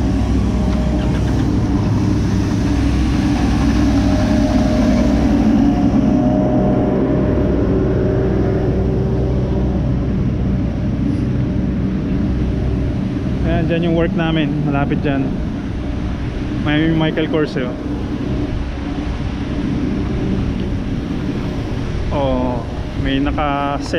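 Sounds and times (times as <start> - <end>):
street sweeper engine drone: 0.0 - 23.9
whining tone: 0.0 - 23.9.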